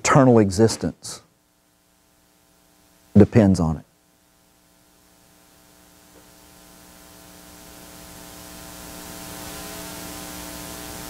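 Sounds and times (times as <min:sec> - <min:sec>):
electrical mains hum with hiss: 0:00.0 - 0:11.0.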